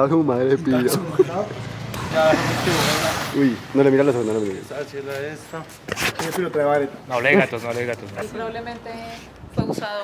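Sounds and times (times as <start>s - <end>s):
vehicle passing: 0.2s - 5.8s.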